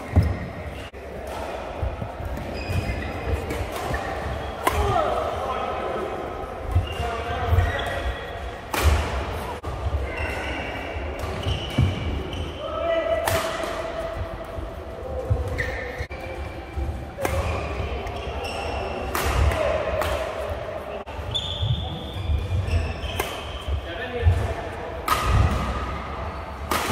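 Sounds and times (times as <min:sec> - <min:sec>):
rackets striking shuttlecock: 0:19.0 - 0:20.5, 0:24.3 - 0:25.9, 0:26.6 - 0:26.9.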